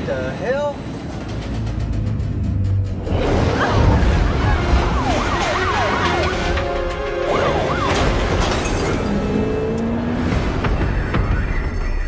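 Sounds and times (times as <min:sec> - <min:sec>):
film score music: 0:00.0 - 0:12.0
police sirens sweeping: 0:03.1 - 0:10.0.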